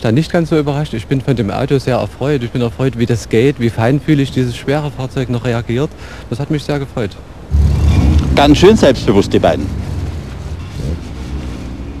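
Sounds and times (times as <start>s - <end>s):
race car engines droning: 3.5s - 12.0s.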